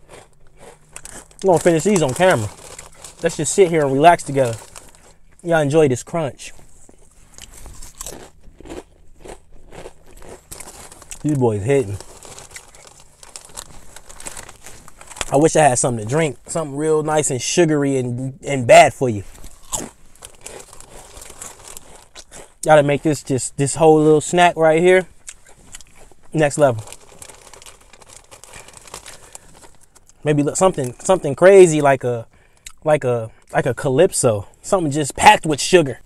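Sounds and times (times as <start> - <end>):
crisp crackling of eating chips: 0.0 - 17.3, 19.0 - 32.8.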